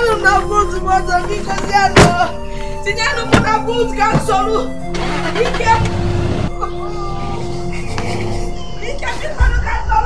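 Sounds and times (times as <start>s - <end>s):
music drone: 2.3s - 8.9s
car engine running: 4.1s - 6.5s.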